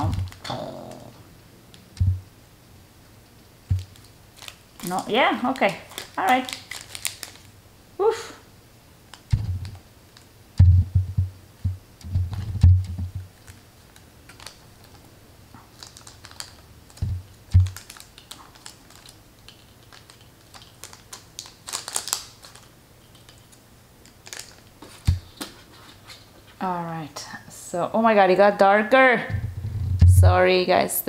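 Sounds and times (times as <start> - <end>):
packet clicking and crinkling: 0.0 - 1.1, 3.7 - 7.6, 12.2 - 25.6
dull thumps and taps: 10.6 - 13.3.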